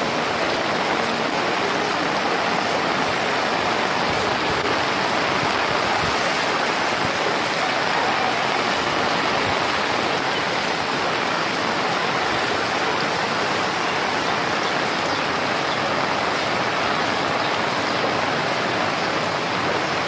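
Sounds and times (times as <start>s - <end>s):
floodwater rushing: 0.0s - 20.0s.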